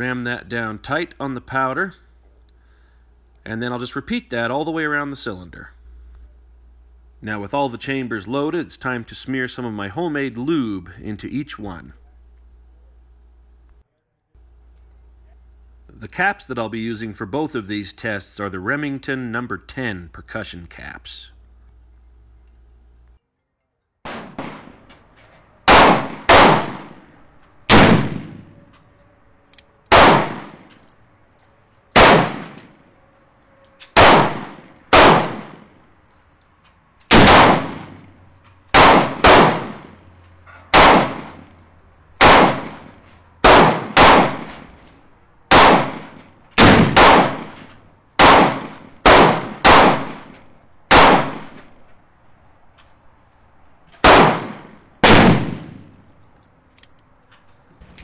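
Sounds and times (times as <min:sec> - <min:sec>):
gunshots echoing: 0:24.1 - 0:25.0, 0:25.7 - 0:27.1, 0:27.7 - 0:28.6, 0:29.9 - 0:30.7, 0:31.9 - 0:32.7, 0:34.0 - 0:35.8, 0:37.1 - 0:38.1, 0:38.7 - 0:40.1, 0:40.7 - 0:41.5, 0:42.2 - 0:44.8, 0:45.5 - 0:51.8, 0:54.0 - 0:56.0.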